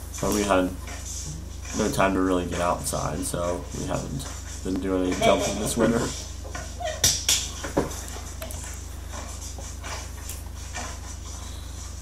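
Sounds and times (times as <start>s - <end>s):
paws and feet on concrete: 4.0s - 12.0s.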